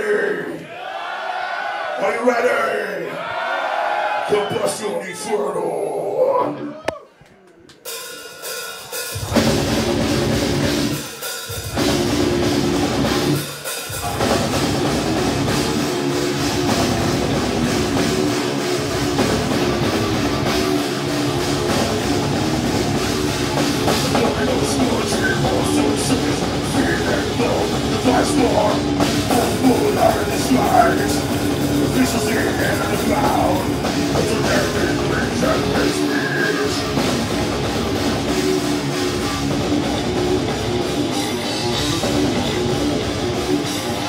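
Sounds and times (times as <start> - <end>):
drum kit with cymbals: 7.8 - 44.0
bass guitar: 9.2 - 44.0
distorted electric guitar: 9.2 - 44.0.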